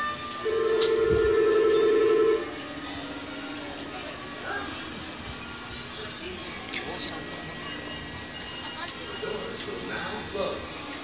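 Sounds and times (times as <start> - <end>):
two-tone door-closing buzzer: 0.0 - 2.5.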